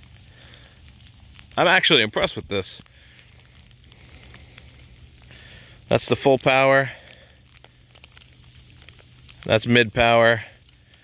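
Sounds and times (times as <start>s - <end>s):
ice pellets ticking: 0.0s - 11.0s.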